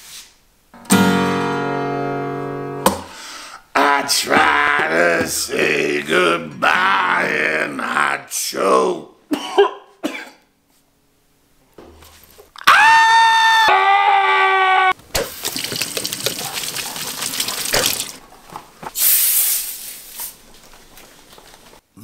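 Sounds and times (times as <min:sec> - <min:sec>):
faucet water running into sink: 0:15.2 - 0:18.2.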